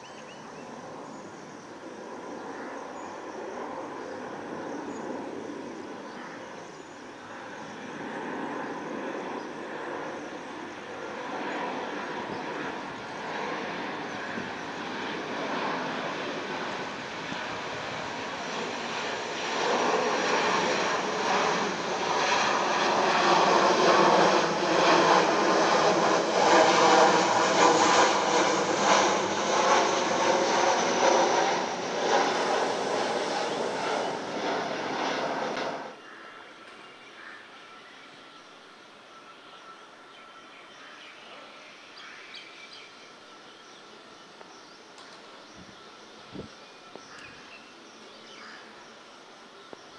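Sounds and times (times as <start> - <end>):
jet airliner passing overhead: 0.0 - 49.9.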